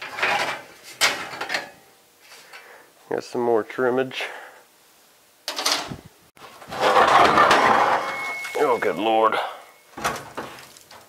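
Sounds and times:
metal scraping on truck bed: 0:06.4 - 0:09.0.

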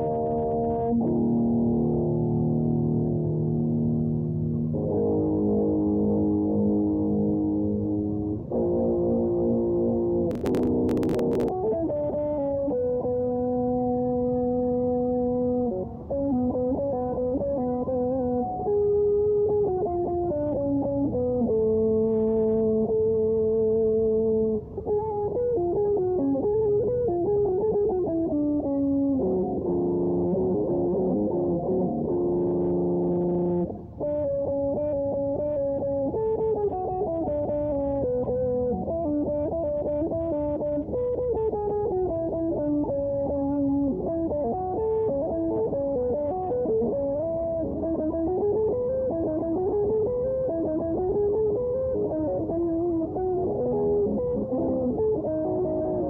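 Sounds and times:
electric guitar lead line: 0:00.0 - 0:56.0.

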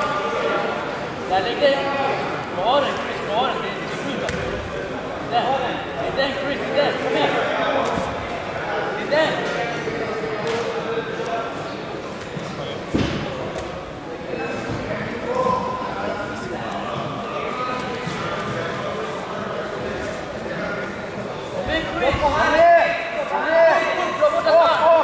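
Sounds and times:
voices calling out echoing: 0:00.0 - 0:25.0
thuds: 0:12.9 - 0:13.4.

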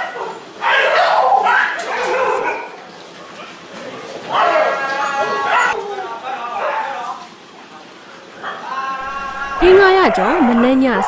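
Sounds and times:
dogs barking together: 0:00.0 - 0:03.7, 0:04.3 - 0:05.8, 0:08.4 - 0:11.0.

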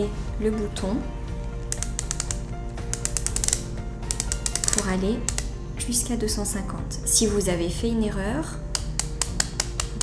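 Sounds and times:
background music: 0:00.0 - 0:10.0
injection pen ratchet clicks: 0:01.4 - 0:05.6, 0:08.7 - 0:10.0.

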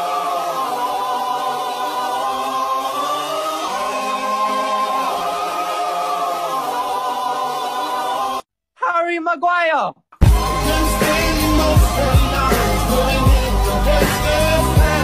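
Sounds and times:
choir singing held notes: 0:00.0 - 0:08.4, 0:10.2 - 0:15.0.

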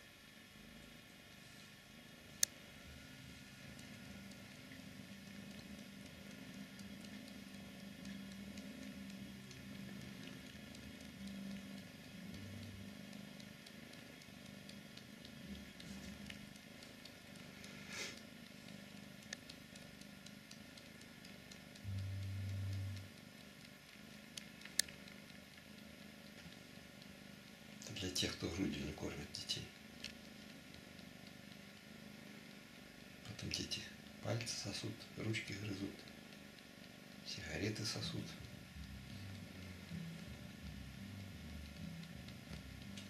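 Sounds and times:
low hum: 0:00.0 - 0:43.0
cat sucking on wool: 0:01.3 - 0:43.0.

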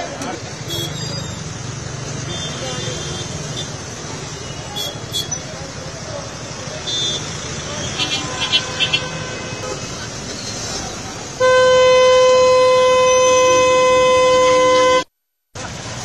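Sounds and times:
traffic: 0:00.0 - 0:16.0
long vehicle horn: 0:11.4 - 0:15.1.

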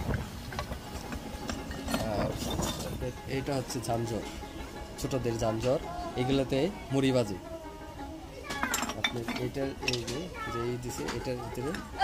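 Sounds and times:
clay dishes clinking: 0:00.5 - 0:04.5, 0:08.4 - 0:12.0.

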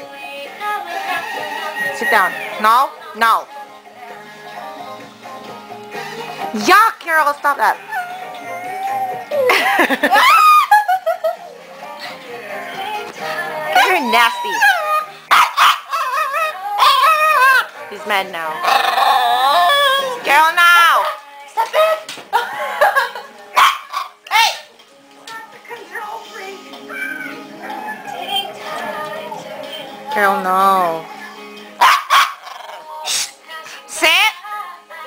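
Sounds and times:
dog whining and howling: 0:07.8 - 0:09.5, 0:10.1 - 0:10.8, 0:13.8 - 0:17.7, 0:18.6 - 0:20.2
dog barking: 0:14.7 - 0:17.7, 0:23.6 - 0:24.7, 0:31.8 - 0:32.5.

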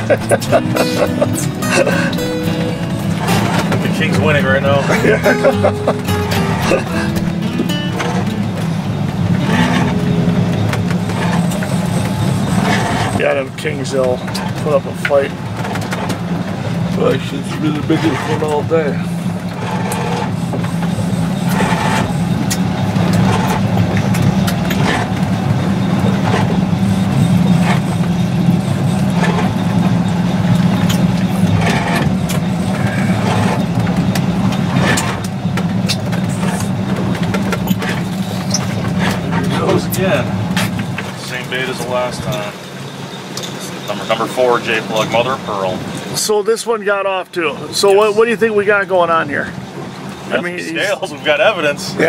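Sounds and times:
boat engine droning: 0:00.0 - 0:52.0.

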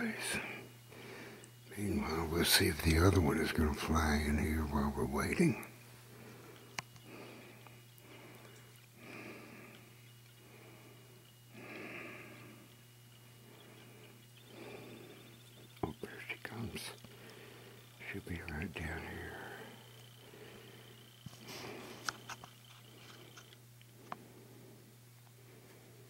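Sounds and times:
steady low hum: 0:00.0 - 0:26.0
person breathing softly: 0:00.3 - 0:01.6, 0:06.0 - 0:18.0, 0:18.8 - 0:22.1
sharp clicks: 0:06.5 - 0:08.9.

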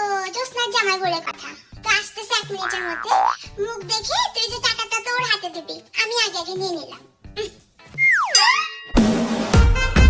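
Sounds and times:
comic sliding whistle tone: 0:08.0 - 0:08.8.

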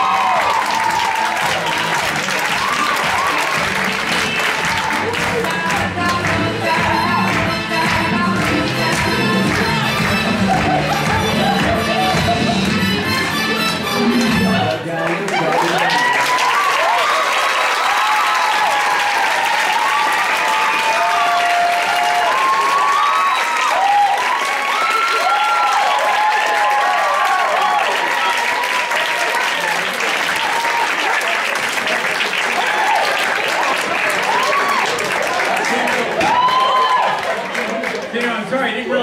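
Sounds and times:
whoops: 0:00.0 - 0:03.8, 0:15.8 - 0:29.4, 0:32.5 - 0:33.2, 0:34.1 - 0:35.1, 0:36.2 - 0:37.4
dance music: 0:00.0 - 0:15.4
audience applauding and cheering: 0:00.0 - 0:38.9.

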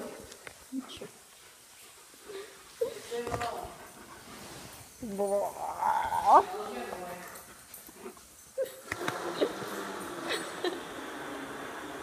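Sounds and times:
dog whining: 0:05.2 - 0:06.7.

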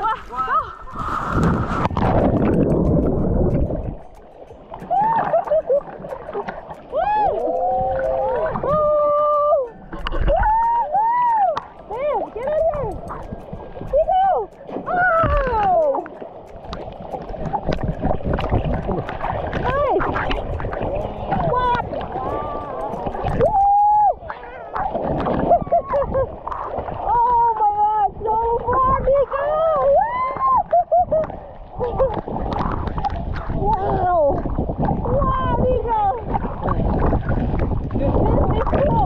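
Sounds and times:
water splashing: 0:00.0 - 0:39.0.

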